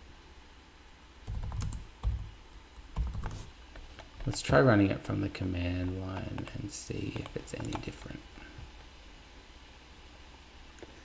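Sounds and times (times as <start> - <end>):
computer keyboard keystrokes: 1.3 - 3.4, 7.1 - 8.2.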